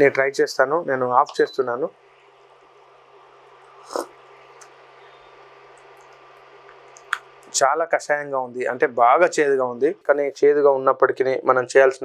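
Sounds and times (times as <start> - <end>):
faint low hum: 0.0 - 12.0
slurping sip of tea: 3.8 - 4.2.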